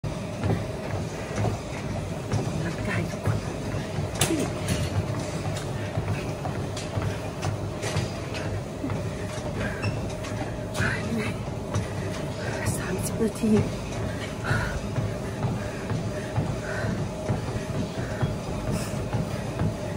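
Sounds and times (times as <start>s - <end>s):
woman talking: 2.5s - 3.4s, 10.8s - 11.4s, 12.4s - 13.7s.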